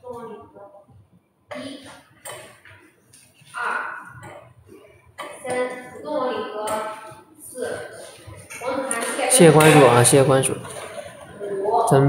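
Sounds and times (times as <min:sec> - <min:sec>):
indistinct voices talking: 0:03.5 - 0:12.0.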